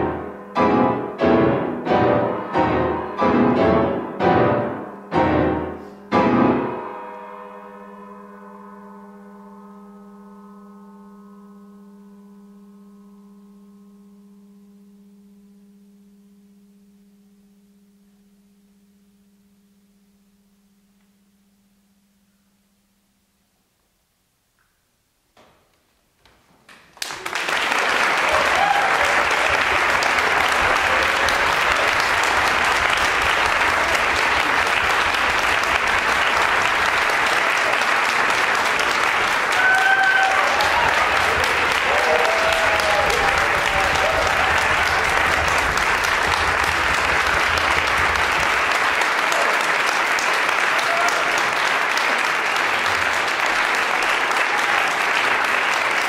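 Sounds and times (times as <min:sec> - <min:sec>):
low piano chord ringing: 0:00.0 - 0:22.5
audience applauding: 0:26.8 - 0:56.0.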